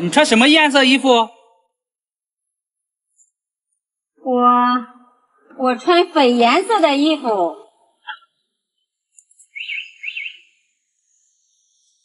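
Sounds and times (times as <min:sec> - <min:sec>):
bird warbling chirps: 0:09.2 - 0:12.0.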